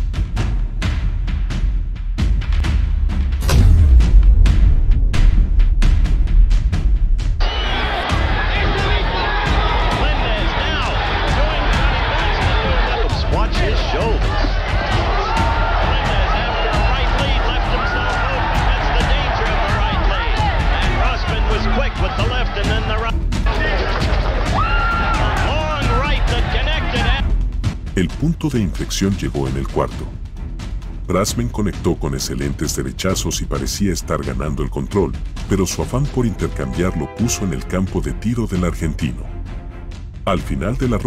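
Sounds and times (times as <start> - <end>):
background music: 0.0 - 41.0
boxing crowd noise: 7.4 - 27.2
commentator speaking: 8.6 - 14.5, 15.8 - 23.8, 25.4 - 27.2, 27.9 - 30.2, 31.0 - 39.4, 40.3 - 41.0.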